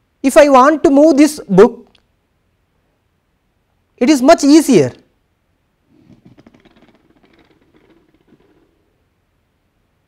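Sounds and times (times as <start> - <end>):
pens rattling under a book: 5.9 - 8.8.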